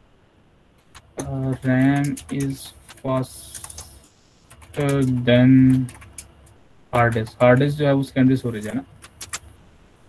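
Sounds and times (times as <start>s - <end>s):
computer keyboard keystrokes: 0.8s - 7.8s, 8.6s - 9.5s
man speaking: 1.2s - 4.0s, 4.7s - 6.1s, 6.9s - 8.9s.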